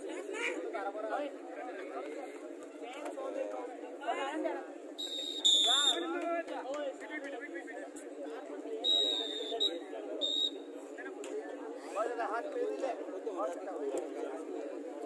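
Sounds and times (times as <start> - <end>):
crowd chatter and shouting: 0.0 - 15.0
shrill whistle blasts: 5.0 - 6.1, 8.8 - 10.6.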